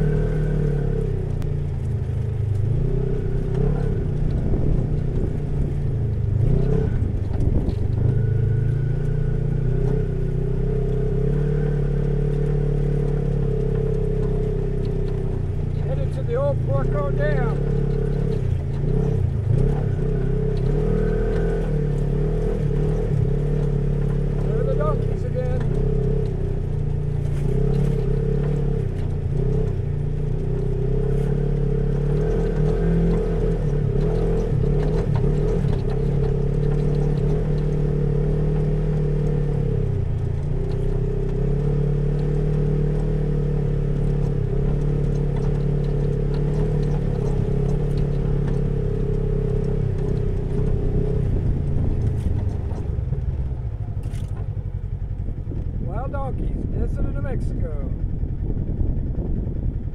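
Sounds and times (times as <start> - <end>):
utility vehicle engine droning: 0.0 - 59.9.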